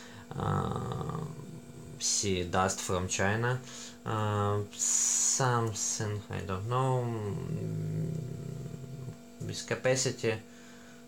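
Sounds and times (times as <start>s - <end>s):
man humming low: 0.0s - 2.4s, 6.6s - 9.6s.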